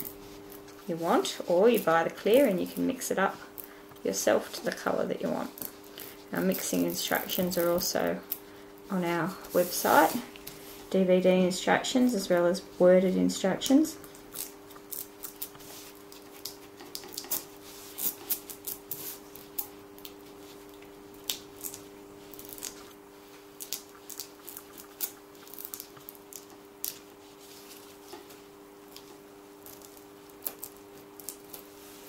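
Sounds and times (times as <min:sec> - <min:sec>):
plastic sheet crackling: 0:00.0 - 0:08.3, 0:14.2 - 0:32.0
steady low hum: 0:00.0 - 0:32.0.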